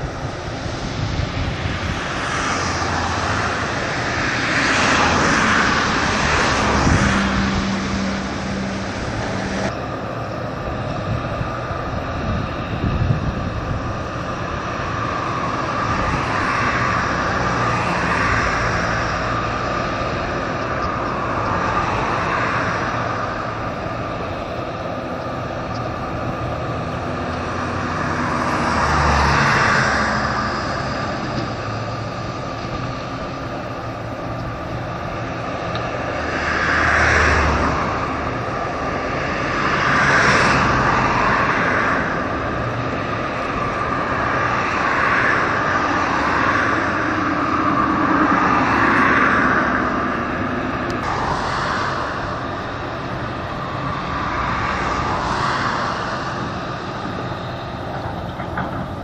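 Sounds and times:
outdoor rushing noise: 0.0 - 59.0.

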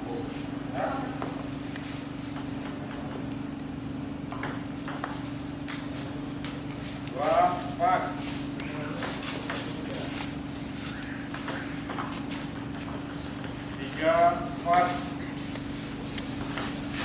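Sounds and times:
table tennis ball clicking: 4.3 - 6.8.

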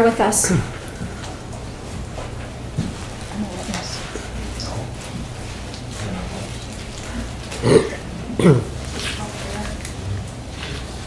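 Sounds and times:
steady low hum: 0.0 - 11.0
murmured voice: 6.0 - 10.8.

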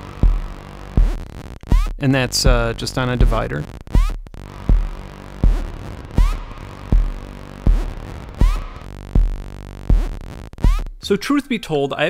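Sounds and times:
steady held synth tones: 0.0 - 11.1
low kick-like thump: 0.2 - 3.4, 4.0 - 11.0
short rising synth zap: 4.0 - 8.9.

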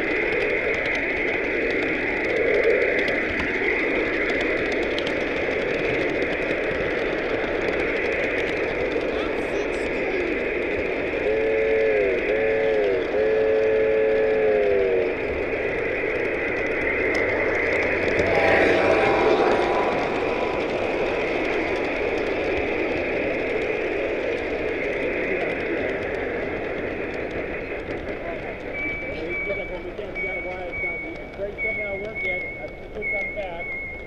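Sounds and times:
steam whistle blasts: 11.2 - 15.1, 18.0 - 21.5
crowd chatter: 18.0 - 21.8.

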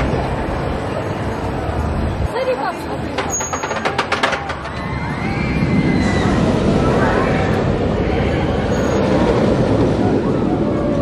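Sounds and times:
roller coaster train rumbling: 0.0 - 11.0.

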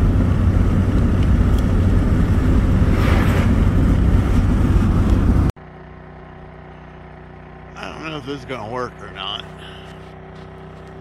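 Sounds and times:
van engine and road rumble: 0.0 - 11.0.

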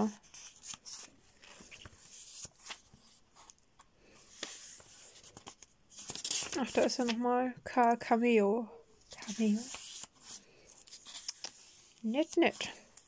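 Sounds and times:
paper pages rustling: 0.0 - 7.3, 9.1 - 13.0.

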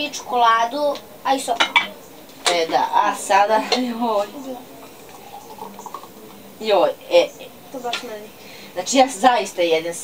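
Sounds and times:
smoothie pouring into a glass: 4.3 - 6.5.

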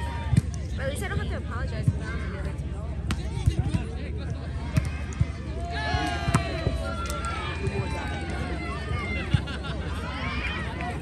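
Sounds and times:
people chattering outdoors: 0.0 - 11.0.

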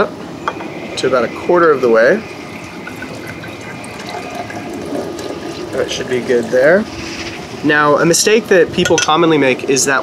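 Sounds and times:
hot water pouring into glass jar: 2.1 - 8.3.

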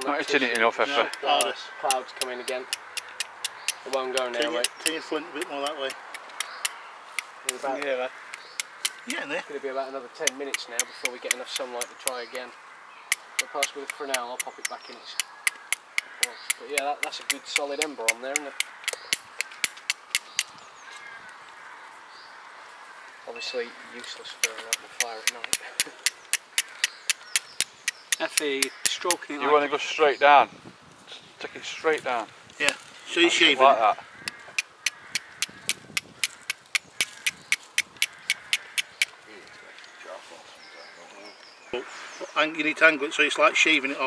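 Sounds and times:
faint bird calls: 0.0 - 30.2, 32.6 - 44.0
steel striking flint clicks: 0.6 - 7.6, 8.3 - 9.1, 10.2 - 12.3, 13.1 - 20.5, 24.4 - 29.0, 34.2 - 39.2.

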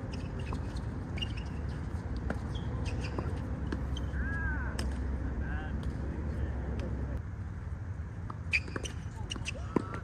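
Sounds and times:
tennis balls struck by racquets: 0.1 - 4.1.

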